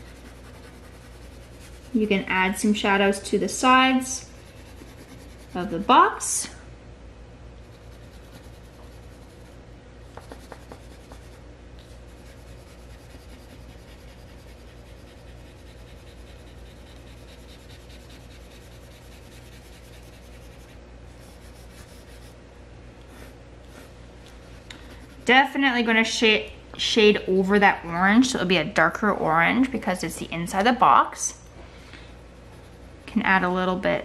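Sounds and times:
pencil scratching on paper: 0.0 - 2.0, 4.3 - 5.7, 7.7 - 9.6, 10.2 - 22.4, 32.4 - 33.2.

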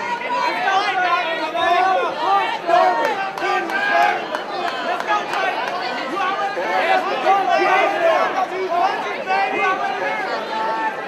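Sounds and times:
crowd shouting and yelling: 0.0 - 11.0.

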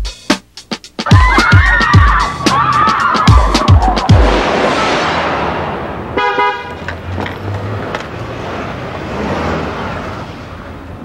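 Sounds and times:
street traffic noise: 1.2 - 11.0
car horn honk: 6.1 - 7.0.

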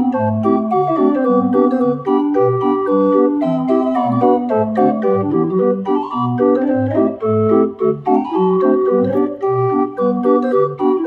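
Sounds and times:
street organ playing: 0.0 - 11.0.

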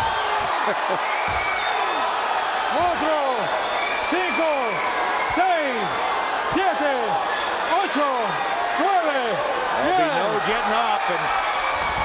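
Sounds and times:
arena crowd noise: 0.0 - 12.0
referee shouting a count: 2.7 - 11.3.

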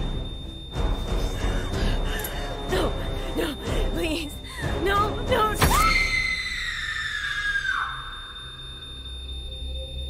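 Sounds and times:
high-pitched scream: 5.6 - 9.1.

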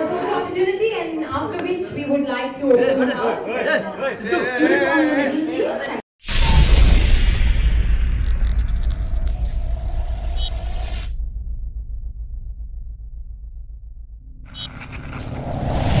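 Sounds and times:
whoosh: 6.2 - 16.0
deep rumbling boom: 6.3 - 10.8, 11.4 - 16.0
crackling high sparkle: 6.8 - 10.6.

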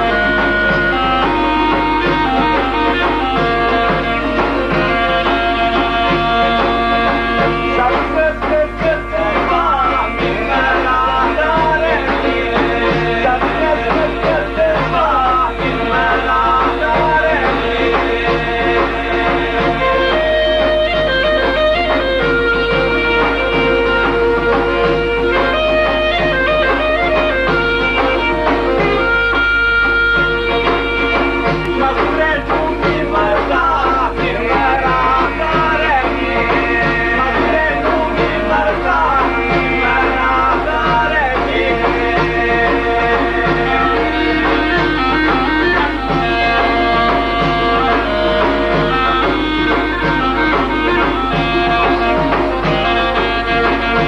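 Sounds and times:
folk music: 0.0 - 54.0.

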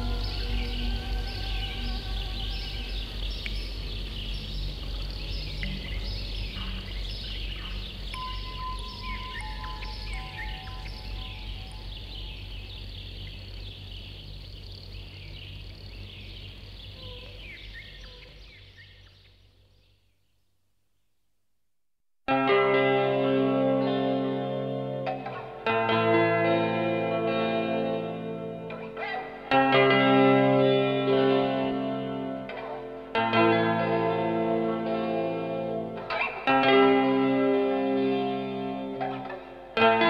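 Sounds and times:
low synth drone: 0.0 - 19.6
birds chirping: 0.0 - 21.1, 23.5 - 40.0.

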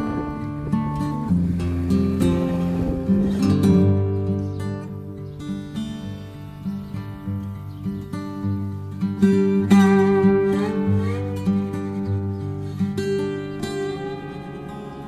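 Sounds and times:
acoustic guitar music: 0.0 - 15.0.

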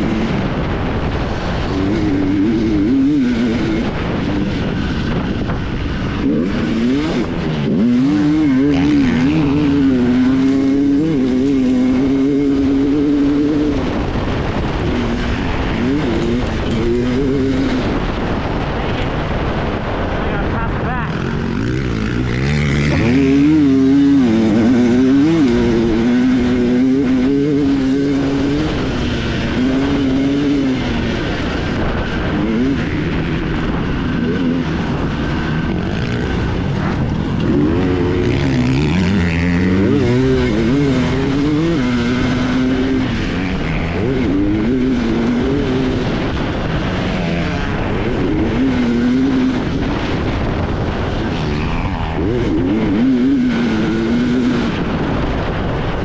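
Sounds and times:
two-stroke dirt bike engine revving: 0.0 - 56.0.

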